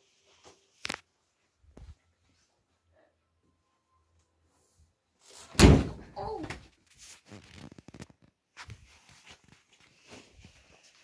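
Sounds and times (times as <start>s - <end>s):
door slamming shut: 5.5s - 6.2s.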